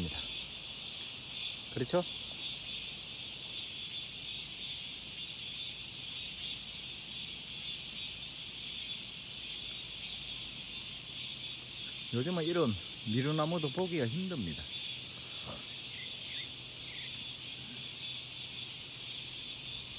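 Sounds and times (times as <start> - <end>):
cicadas droning: 0.0 - 19.9.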